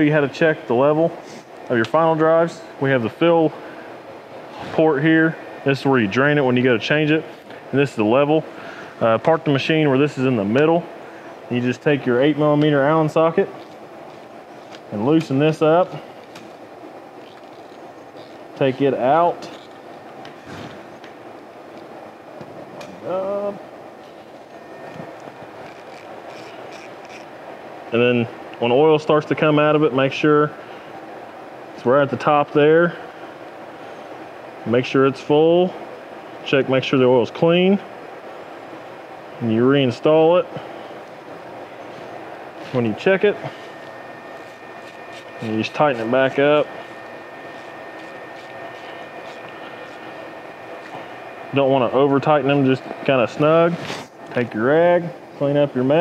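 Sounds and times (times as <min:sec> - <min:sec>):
steady background hum: 0:00.0 - 0:56.0.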